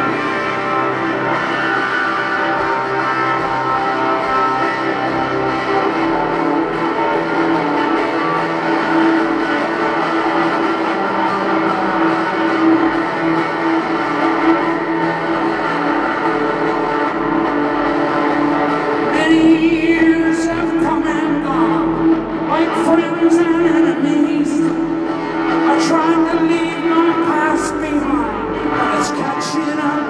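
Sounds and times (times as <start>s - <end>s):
ringing amplified guitar notes: 0.0s - 30.0s.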